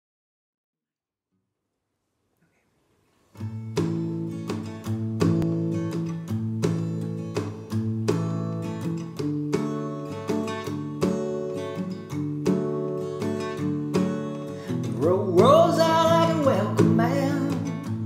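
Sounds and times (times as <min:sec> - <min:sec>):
acoustic guitar chords: 0:03.3 - 0:18.0.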